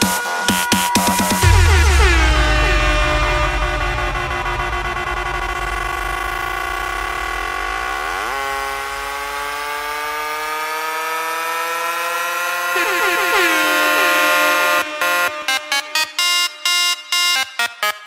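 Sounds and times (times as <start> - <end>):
horn-like synthesizer chord: 0.0 - 10.1, 12.0 - 17.5
deep bass: 1.4 - 9.7.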